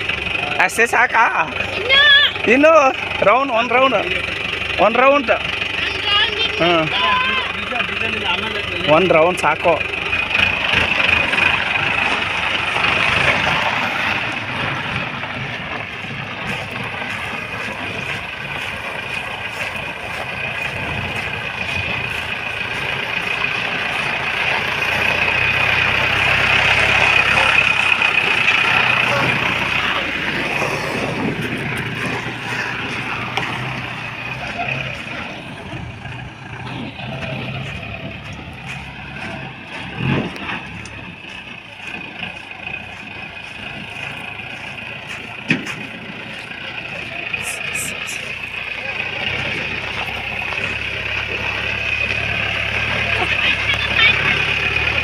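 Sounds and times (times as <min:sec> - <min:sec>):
vehicle engine driving on gravel: 0:00.0 - 0:55.0.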